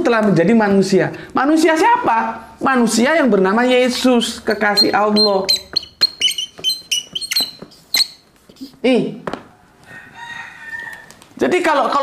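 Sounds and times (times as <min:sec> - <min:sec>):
marker squeaking on whiteboard: 0:03.6 - 0:08.9.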